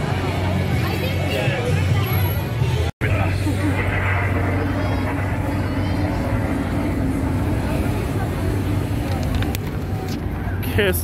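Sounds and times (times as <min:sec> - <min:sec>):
pedestrian voices: 0:00.0 - 0:11.0
traffic rumble: 0:00.0 - 0:11.0.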